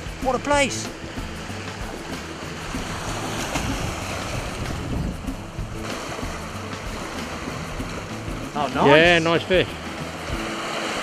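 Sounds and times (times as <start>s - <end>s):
waves washing against rocks: 0.0s - 11.0s
wind rumbling on microphone: 1.0s - 8.5s.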